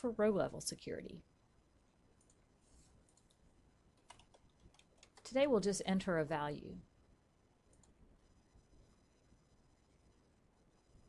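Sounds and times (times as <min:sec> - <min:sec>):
computer mouse clicks: 0:02.2 - 0:02.4, 0:03.0 - 0:03.4, 0:04.0 - 0:05.4, 0:07.7 - 0:08.0
keyboard typing: 0:03.0 - 0:03.4, 0:04.0 - 0:05.5, 0:07.7 - 0:08.0.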